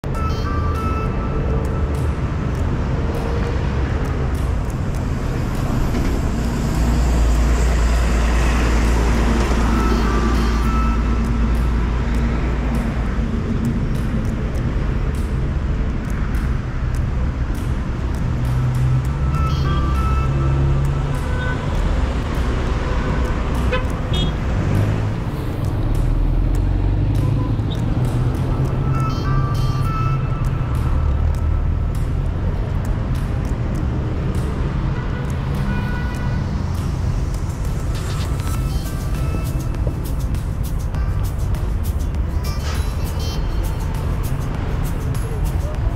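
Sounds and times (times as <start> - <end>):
cars passing: 0.0 - 45.9
music playing: 0.0 - 45.9.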